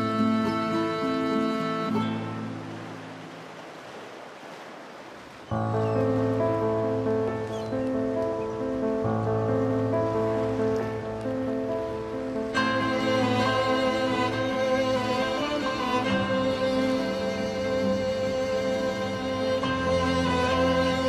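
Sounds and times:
string-like music with bass: 0:12.5 - 0:21.0.

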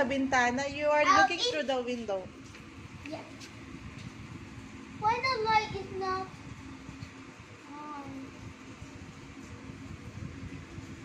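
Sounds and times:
faint steady hum: 0:00.0 - 0:11.0
wind hissing at window: 0:00.0 - 0:11.0.

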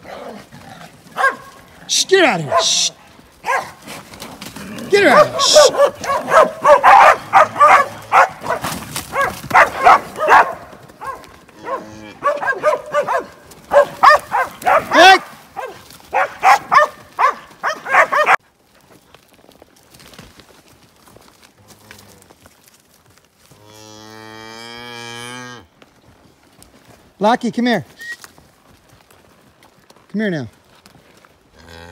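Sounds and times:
cows and calves bawling: 0:00.0 - 0:18.4, 0:23.5 - 0:25.7, 0:31.5 - 0:31.9
long low moo: 0:31.6 - 0:31.9.

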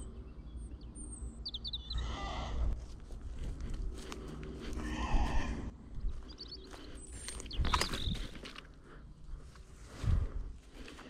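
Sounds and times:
songbird chirping: 0:00.0 - 0:11.0.

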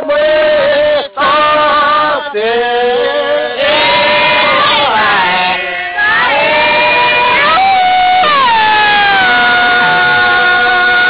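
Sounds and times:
voices singing work chant: 0:00.0 - 0:11.0.

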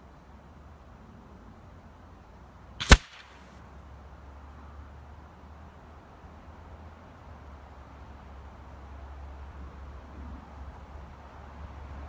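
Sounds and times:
air rifle shot crack: 0:02.8 - 0:03.5
short hiss: 0:02.8 - 0:03.6.

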